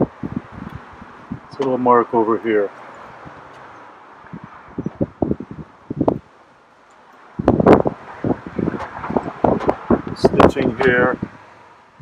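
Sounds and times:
wind on microphone: 0.0s - 1.9s, 3.0s - 6.4s, 7.2s - 12.0s.

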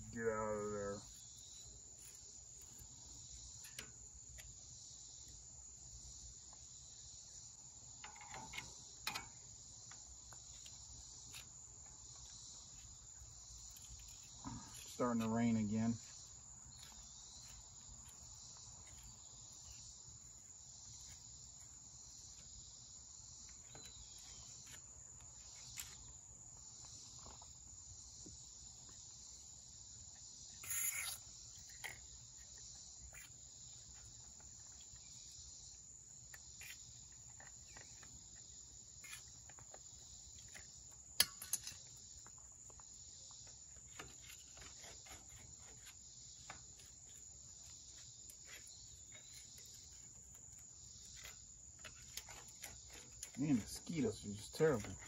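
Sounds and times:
crickets chirring: 0.0s - 55.0s.

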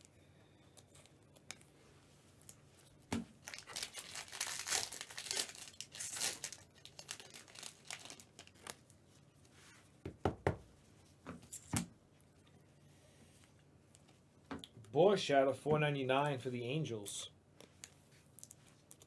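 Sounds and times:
foil wrapper tearing and crinkling: 3.4s - 8.8s.

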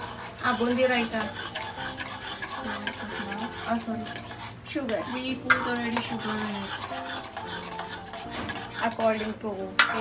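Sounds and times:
ladle scraping a steel pan: 0.0s - 10.0s.

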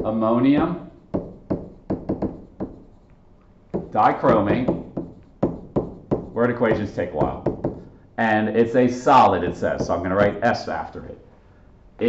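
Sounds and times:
stylus tapping on surface: 1.1s - 2.9s, 3.7s - 7.9s.

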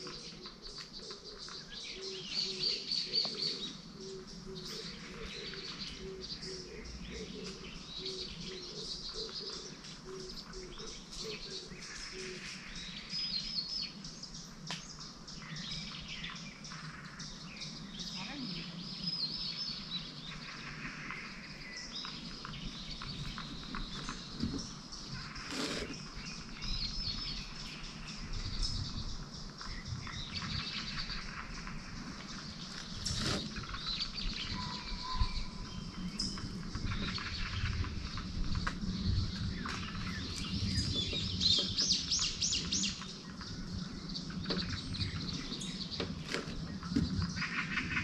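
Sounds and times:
wild birds chirping and whistling: 0.0s - 48.0s.

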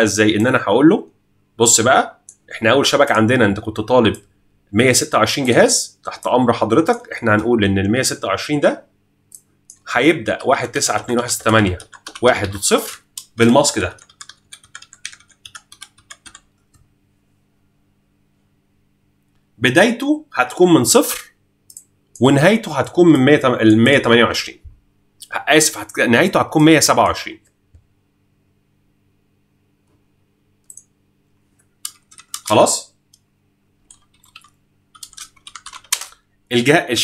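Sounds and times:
faint steady hum: 0.0s - 37.0s
computer keyboard typing: 9.7s - 16.8s, 31.8s - 32.7s, 33.9s - 36.2s.

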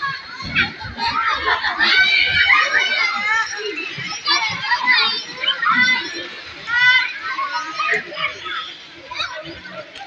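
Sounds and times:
children shouting in a pool: 0.0s - 10.0s.

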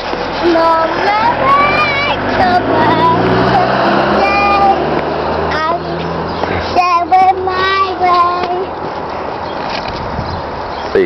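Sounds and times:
toddler sing-song voice: 0.3s - 8.9s.

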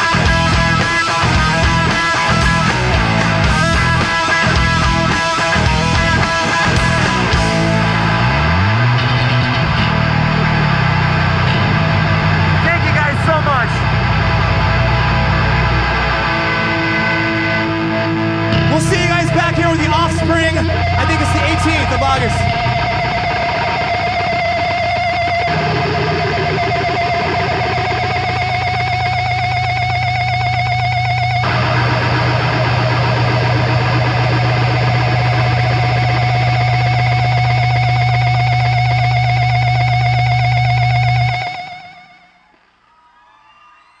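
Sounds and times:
electric guitar feedback drone: 0.0s - 42.8s.

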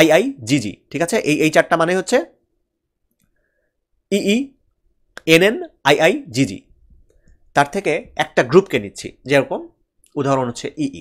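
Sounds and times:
man speaking: 0.0s - 2.4s, 4.1s - 4.6s, 5.2s - 6.8s, 7.5s - 11.0s.

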